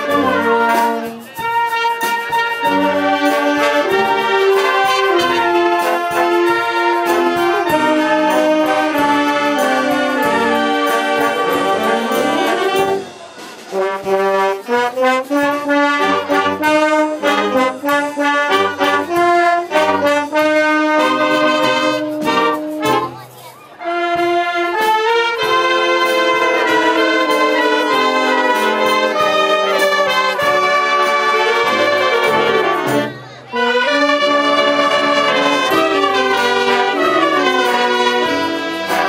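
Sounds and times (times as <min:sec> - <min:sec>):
wind band playing: 0:00.0 - 0:39.0.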